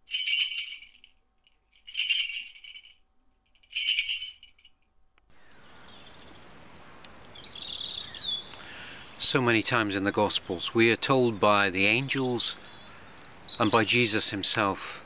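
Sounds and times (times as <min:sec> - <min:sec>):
small bell jingling: 0:00.0 - 0:03.0, 0:03.6 - 0:04.7
outdoor hush: 0:00.0 - 0:15.0
bird chirping: 0:07.2 - 0:09.2, 0:11.3 - 0:14.2.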